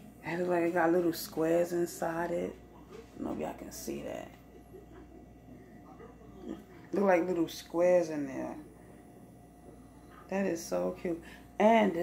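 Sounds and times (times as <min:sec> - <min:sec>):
woman speaking: 0:00.2 - 0:04.6, 0:06.0 - 0:08.8, 0:10.1 - 0:12.0.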